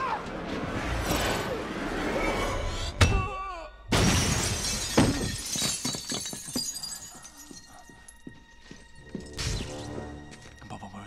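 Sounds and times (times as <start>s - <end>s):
glass shelves shattering: 3.9s - 7.1s
glass shards tinkling: 4.6s - 7.8s.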